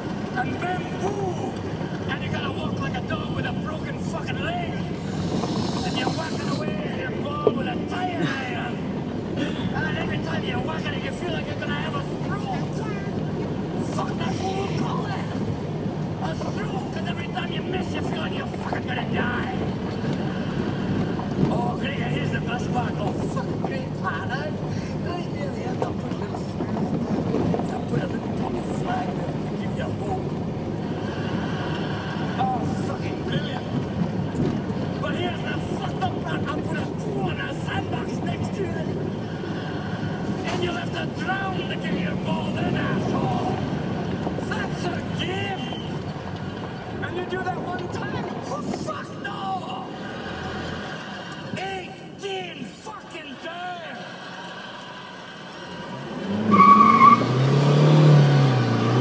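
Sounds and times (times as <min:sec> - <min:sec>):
car rumble while driving: 0:00.0 - 0:52.2, 0:54.0 - 0:59.0.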